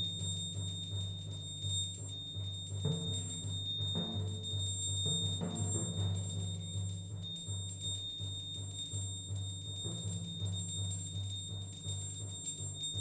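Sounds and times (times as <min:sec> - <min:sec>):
pulsing low tone: 0:00.0 - 0:13.0
percussion ensemble music: 0:02.8 - 0:07.8.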